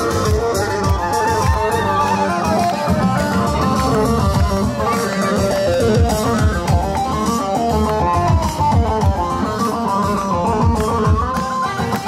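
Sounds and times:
live band playing dance tune: 0:00.0 - 0:12.0.

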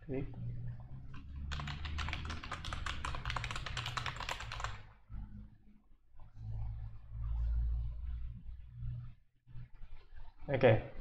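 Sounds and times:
fast typing on keyboard: 0:01.1 - 0:04.8
low hum: 0:05.0 - 0:10.4.

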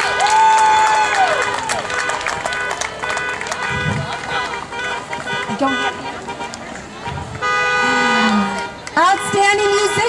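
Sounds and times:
car horn honk: 0:02.0 - 0:10.0.

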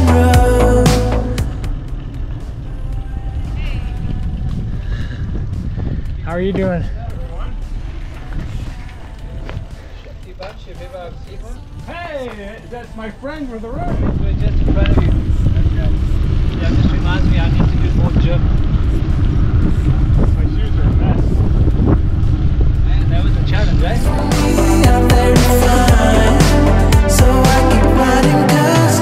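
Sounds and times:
wind buffeting microphone: 0:01.7 - 0:24.2.

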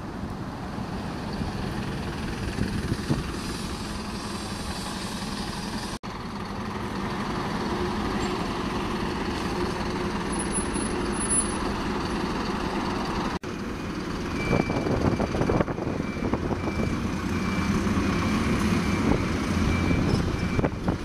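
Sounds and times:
bus engines droning: 0:00.0 - 0:21.0.

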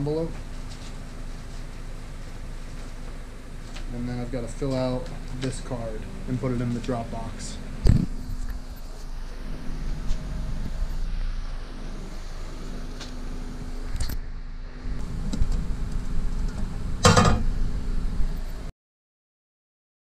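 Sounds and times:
low electrical hum: 0:00.0 - 0:18.7.

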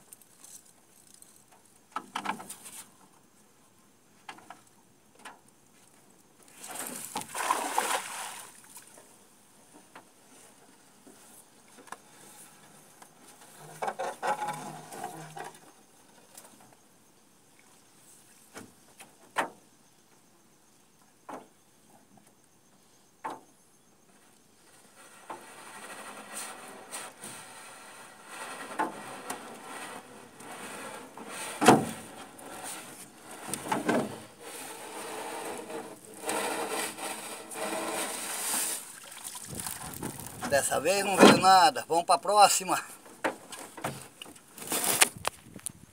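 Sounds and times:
water streaming and dripping off net: 0:06.5 - 0:09.0, 0:34.4 - 0:40.4.

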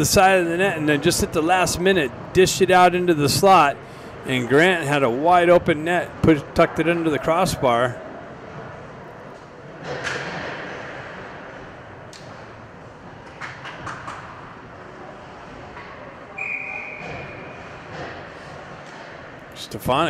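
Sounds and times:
steady hall hum: 0:00.0 - 0:20.0.

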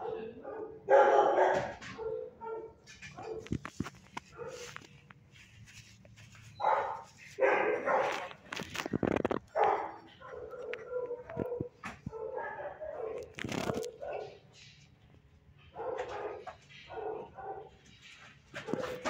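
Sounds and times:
dog barking: 0:00.0 - 0:03.5, 0:04.3 - 0:04.8, 0:06.6 - 0:08.4, 0:09.5 - 0:14.4, 0:15.7 - 0:17.9, 0:18.5 - 0:19.0.

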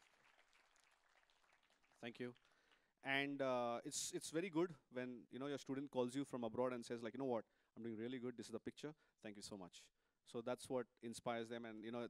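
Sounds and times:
faint audience applause: 0:00.0 - 0:02.9.

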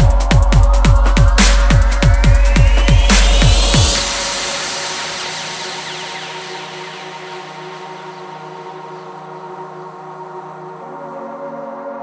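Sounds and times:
synthesizer drone: 0:00.0 - 0:12.0.

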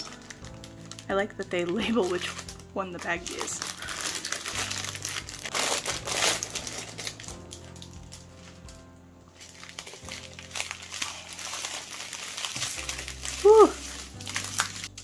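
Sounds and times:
plastic wrap crinkling: 0:00.0 - 0:15.0.

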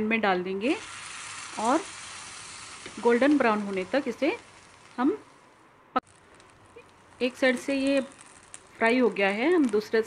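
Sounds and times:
sandwich sizzling in a frying pan: 0:00.7 - 0:10.0.

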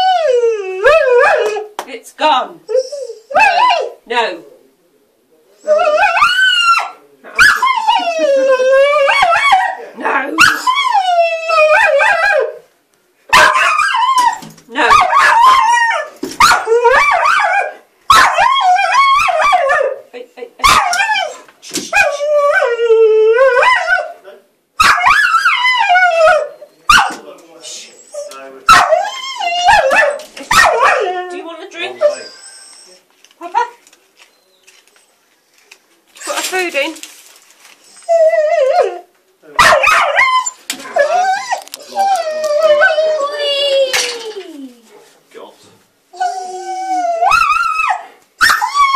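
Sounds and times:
dog howling and yelping: 0:00.0 - 0:01.7, 0:02.7 - 0:04.0, 0:05.6 - 0:09.8, 0:10.4 - 0:12.6, 0:13.4 - 0:20.0, 0:20.6 - 0:24.2, 0:24.8 - 0:27.0, 0:28.0 - 0:33.0, 0:38.0 - 0:44.8, 0:46.2 - 0:48.9
dog barking: 0:13.3 - 0:13.9, 0:14.8 - 0:15.7, 0:16.4 - 0:18.6, 0:20.6 - 0:21.0, 0:24.8 - 0:25.2, 0:26.9 - 0:27.2, 0:28.7 - 0:29.0, 0:29.7 - 0:31.0, 0:39.6 - 0:40.3.

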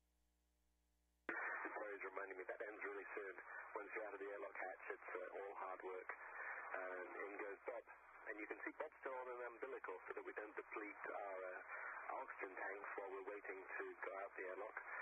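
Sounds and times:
speech over radio channel: 0:01.3 - 0:15.0.

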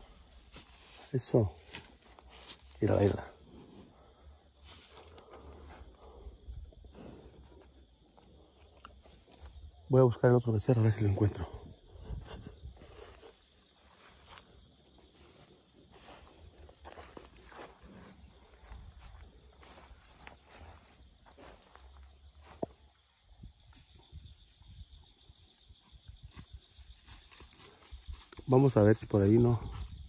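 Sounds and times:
footsteps on dry leaves: 0:00.0 - 0:03.4, 0:15.2 - 0:22.6.

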